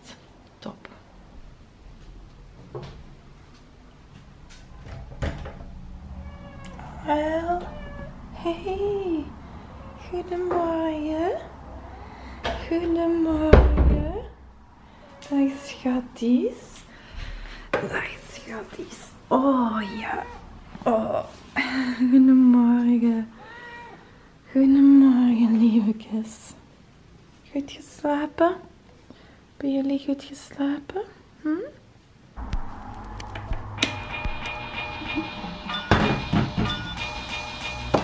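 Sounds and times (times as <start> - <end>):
cat meowing: 6.1 - 8.3, 9.6 - 10.2, 19.6 - 20.5, 23.4 - 24.1.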